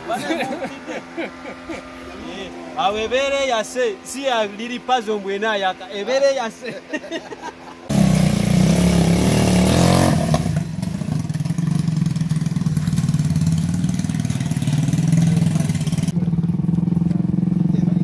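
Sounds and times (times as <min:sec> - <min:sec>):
small engine running: 0:00.0 - 0:06.5, 0:07.4 - 0:18.0
man talking: 0:02.1 - 0:06.9.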